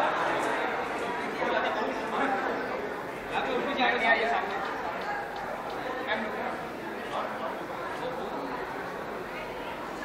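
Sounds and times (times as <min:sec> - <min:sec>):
indistinct chatter of people: 0:00.0 - 0:10.0.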